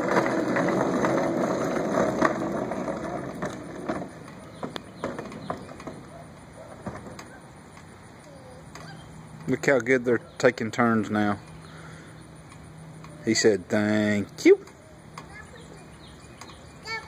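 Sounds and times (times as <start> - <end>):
toy car wheels rumbling on concrete: 0.0 - 11.6.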